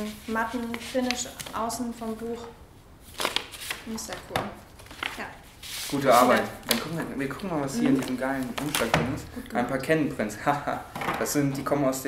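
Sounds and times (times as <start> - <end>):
paper slaps: 3.2 - 5.2.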